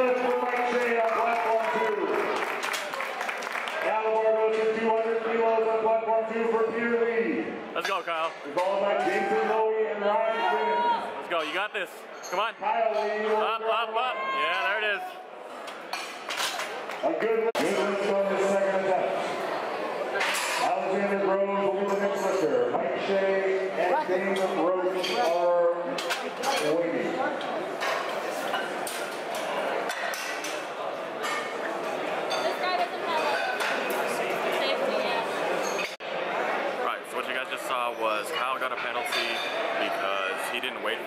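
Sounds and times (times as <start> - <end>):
crowd voices: 0.0 - 41.0.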